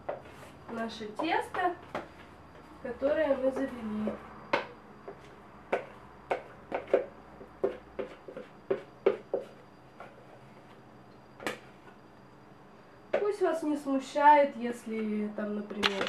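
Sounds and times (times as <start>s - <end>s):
spoon knocking and scraping plastic jug: 5.2s - 9.6s.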